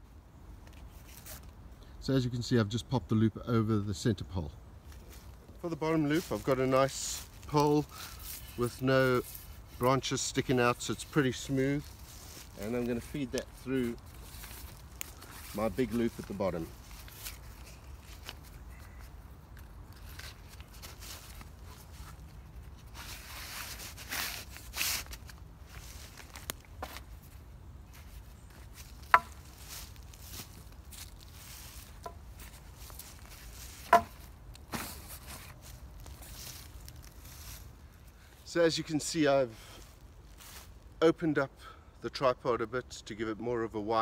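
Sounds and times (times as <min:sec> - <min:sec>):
footsteps in dry leaves: 0:04.8 - 0:38.5, 0:39.1 - 0:41.0.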